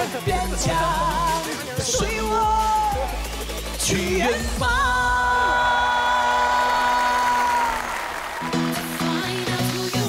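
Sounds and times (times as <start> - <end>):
electronic music with repeating chords: 0.0 - 10.0
applause: 5.9 - 10.0.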